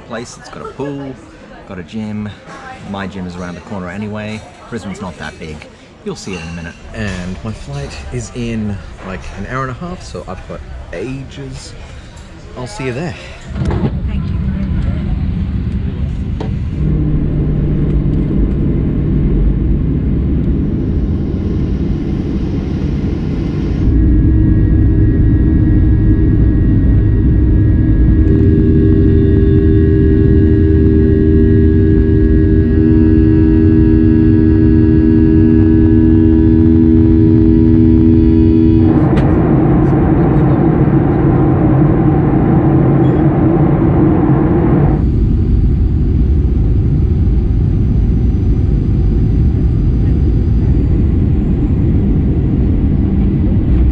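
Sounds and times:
multi-tone whine: 0.0 - 53.9
jet engine rumble in cabin: 6.2 - 53.9.

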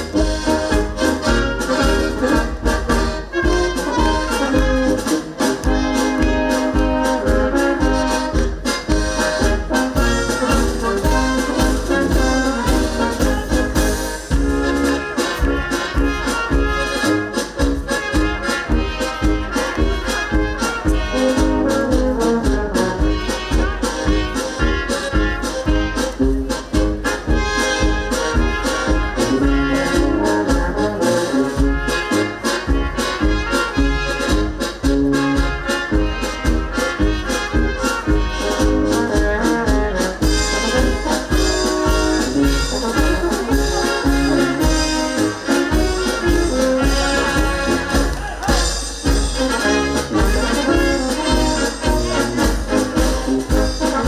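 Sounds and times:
brass band playing dance tune: 0.0 - 54.0.

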